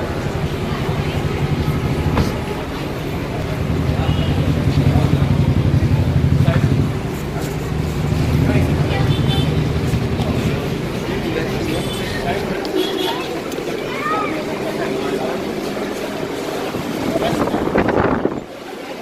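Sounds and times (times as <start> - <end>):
crowd chatter: 0.0 - 19.0.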